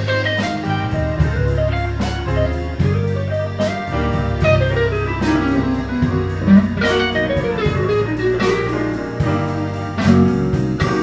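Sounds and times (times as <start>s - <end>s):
drums with cymbal pulse: 0.0s - 11.0s
electric bass: 0.0s - 11.0s
electric guitar melody: 0.0s - 11.0s.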